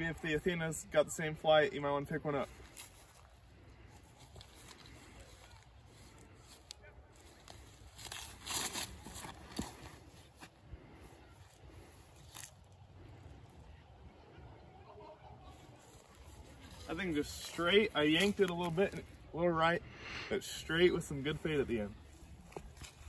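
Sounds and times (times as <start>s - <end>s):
footsteps through dry leaves: 2.4s - 13.4s, 15.5s - 19.2s.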